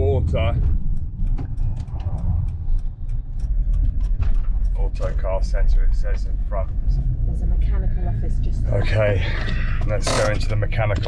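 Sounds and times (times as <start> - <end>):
cabin ticks and rattles: 0.0 - 6.8, 9.3 - 11.0
van engine and road rumble: 0.0 - 11.0.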